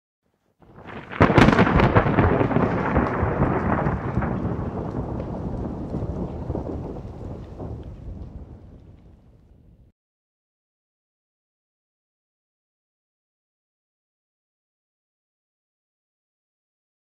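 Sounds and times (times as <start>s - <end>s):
thunder crack and rumble: 0.6s - 9.9s.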